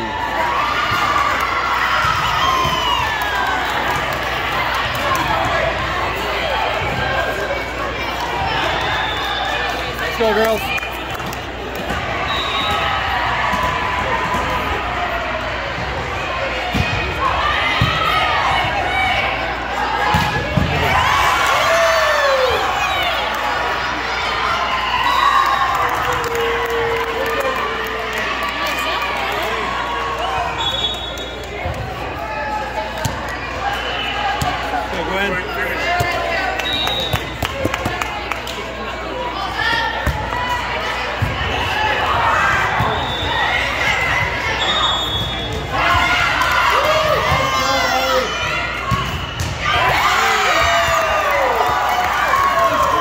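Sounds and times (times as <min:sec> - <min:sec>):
people shouting and cheering: 0:00.0 - 0:53.0
volleyball hits and bounces: 0:15.8 - 0:19.1, 0:20.0 - 0:21.1, 0:39.6 - 0:42.0.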